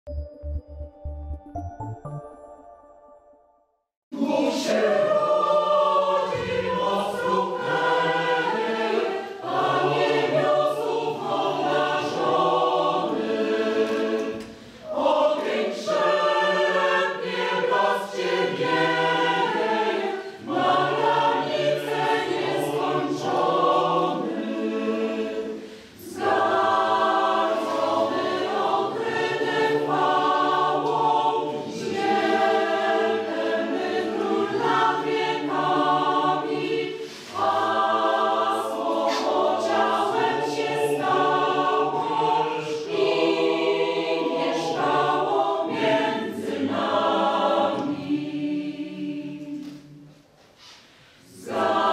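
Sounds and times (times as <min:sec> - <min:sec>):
mixed choir singing: 0:04.1 - 0:51.9.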